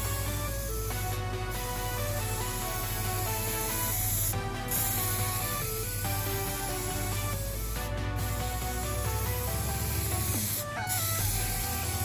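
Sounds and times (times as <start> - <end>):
electronic music with steady beat: 0.0 - 12.0
spray-paint can hissing: 0.0 - 12.0.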